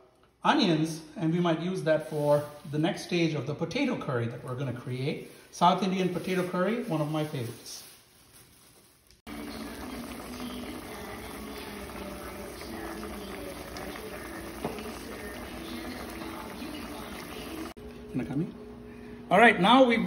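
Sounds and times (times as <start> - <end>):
pot simmering with bubbling hiss: 9.2 - 17.8.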